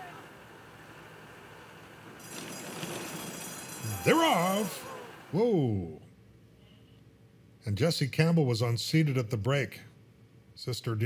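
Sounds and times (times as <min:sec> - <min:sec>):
bell ringing: 0:02.2 - 0:04.9
hooves clattering: 0:02.2 - 0:04.9
starting gate opening: 0:02.2 - 0:05.3.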